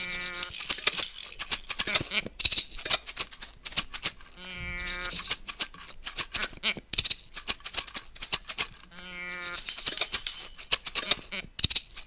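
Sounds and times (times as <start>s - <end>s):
bright jingling hiss: 0.0s - 1.7s, 9.4s - 10.8s
shakers rhythmic shaking: 0.0s - 12.0s.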